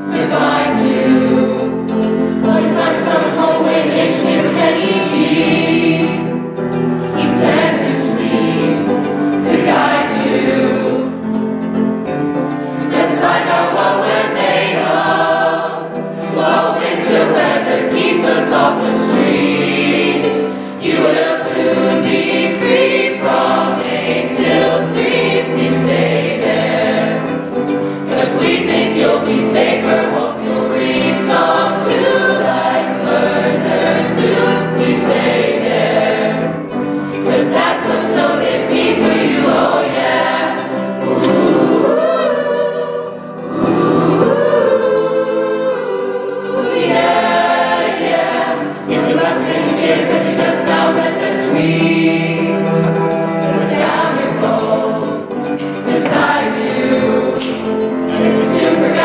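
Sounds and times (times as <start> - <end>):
choir singing: 0.0 - 59.0
piano accompaniment: 0.0 - 59.0.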